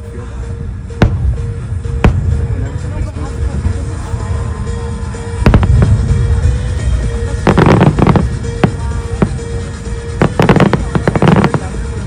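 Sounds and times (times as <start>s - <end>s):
low rumble: 0.0s - 12.0s
firework cracks: 7.5s - 9.4s, 10.2s - 11.8s.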